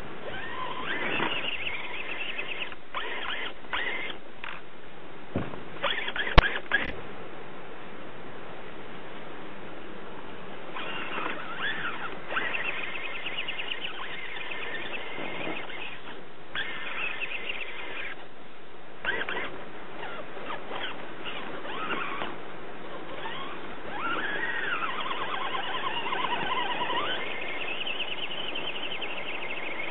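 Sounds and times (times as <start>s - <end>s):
electric motor and gears whining: 0.0s - 4.6s, 5.8s - 7.0s, 10.7s - 18.2s, 19.0s - 29.9s.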